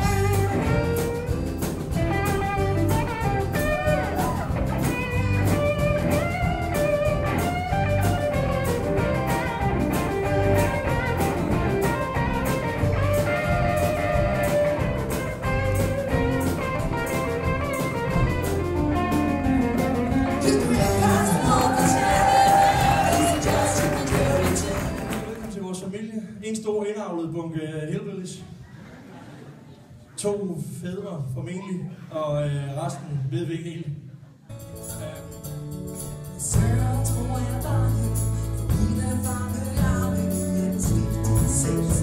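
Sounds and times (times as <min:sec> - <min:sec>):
pulsing bass line: 0:00.0 - 0:25.2
guitars: 0:00.0 - 0:25.5, 0:34.5 - 0:42.0
steady drum beat: 0:00.0 - 0:25.5.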